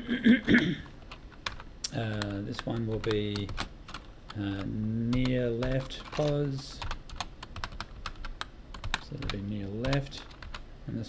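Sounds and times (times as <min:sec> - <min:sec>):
loud cough: 0:00.0 - 0:00.9
computer keyboard keystrokes: 0:01.1 - 0:10.6.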